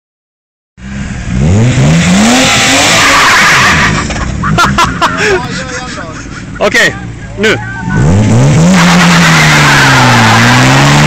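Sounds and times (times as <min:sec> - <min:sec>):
car engine revving: 0:00.8 - 0:11.0
people shouting excitedly: 0:06.9 - 0:08.1
tyres squealing: 0:07.0 - 0:11.0.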